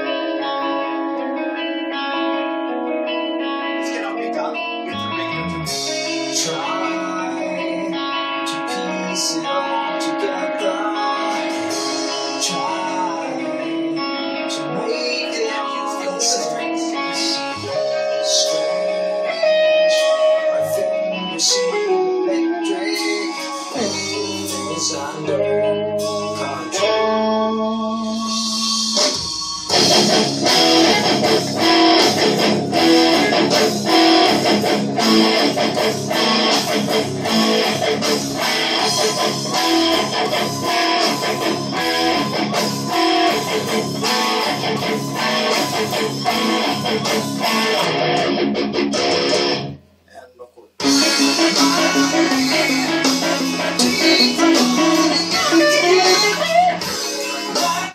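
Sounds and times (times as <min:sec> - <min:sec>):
electric guitar through an amp: 0:00.0 - 0:50.2, 0:50.8 - 0:57.9.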